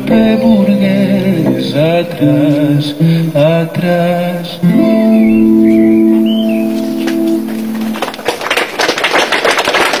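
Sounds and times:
man singing: 0.0s - 5.9s
acoustic guitar: 0.0s - 8.4s
listeners clapping: 7.0s - 10.0s.

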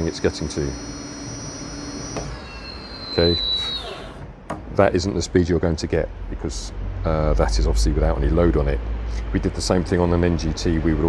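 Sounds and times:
electric motor whining: 0.0s - 4.4s.

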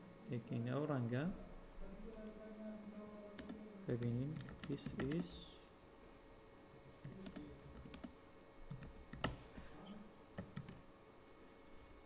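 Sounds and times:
faint keyboard typing: 2.1s - 2.4s, 3.2s - 5.5s, 6.7s - 10.8s.

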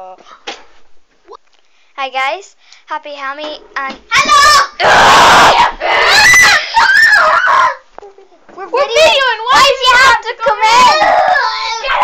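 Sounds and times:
child screaming: 4.1s - 7.8s, 9.0s - 12.0s.

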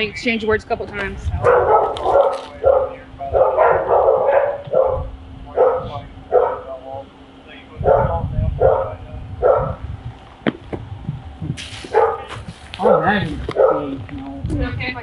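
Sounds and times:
dog barking: 1.4s - 6.8s, 7.8s - 9.8s, 11.9s - 14.0s.

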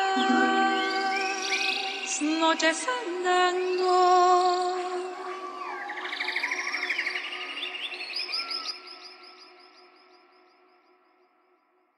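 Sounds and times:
birds chirping and trilling: 0.0s - 10.4s.

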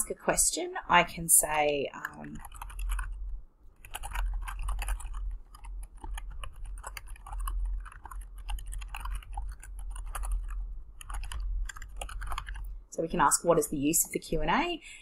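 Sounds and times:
typing on computer keyboard: 1.9s - 12.8s.

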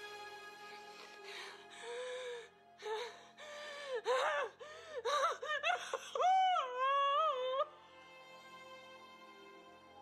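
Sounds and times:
quiet sustained music: 0.0s - 10.0s.

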